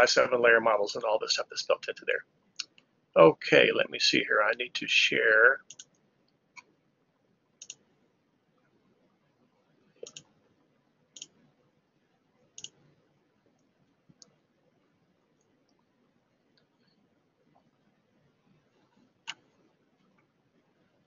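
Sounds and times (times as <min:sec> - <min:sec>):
computer mouse clicks: 0:05.6 - 0:06.8, 0:07.6 - 0:07.9, 0:10.0 - 0:10.4, 0:11.1 - 0:11.4, 0:12.5 - 0:12.9, 0:18.9 - 0:19.6.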